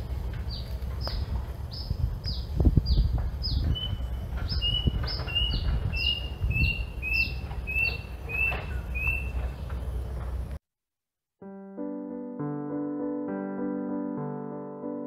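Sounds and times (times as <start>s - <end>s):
bird whistling calls: 1.0s - 9.5s.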